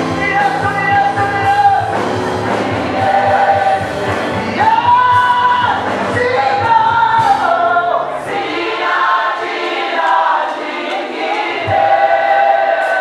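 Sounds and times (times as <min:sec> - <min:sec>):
backing band low beat: 0:00.0 - 0:13.0
choir and congregation singing: 0:00.0 - 0:13.0.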